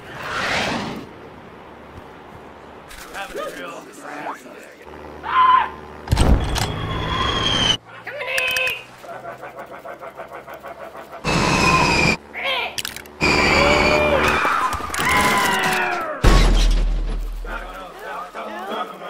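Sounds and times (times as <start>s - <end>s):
falling whistle: 6.3s - 7.8s.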